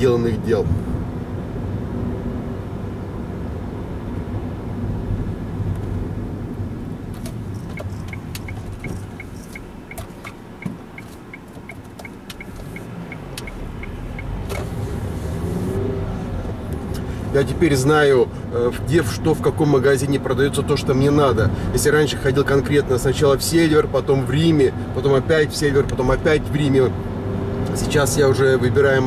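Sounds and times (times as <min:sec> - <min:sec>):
car engine and road rumble: 0:00.0 - 0:29.0
turn signal ticking: 0:06.9 - 0:17.6.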